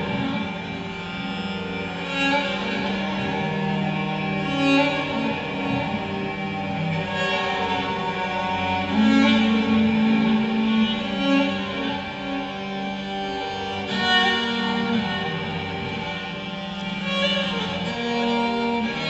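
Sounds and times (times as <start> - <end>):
instrumental music with long held notes: 0.0 - 19.0.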